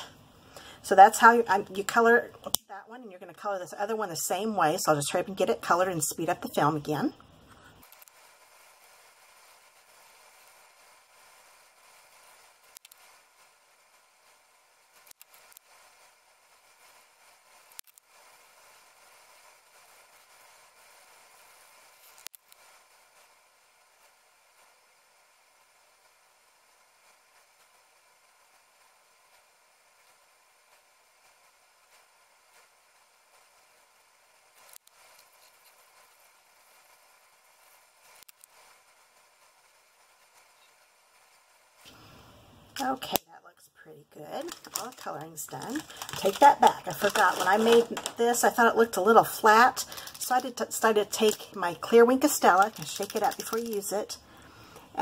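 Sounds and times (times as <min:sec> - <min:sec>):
faint steady hiss: 0:00.0 - 0:55.0.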